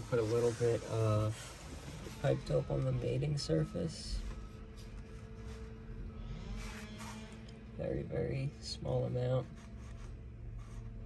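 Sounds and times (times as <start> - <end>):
hand handling rustle: 0.0 - 5.9
steady low hum: 0.0 - 11.0.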